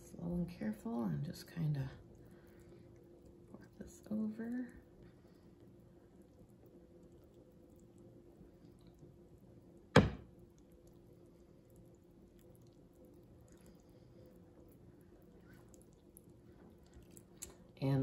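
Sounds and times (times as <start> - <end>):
faint steady hum: 0.0 - 18.0
sharp knock: 10.0 - 10.2.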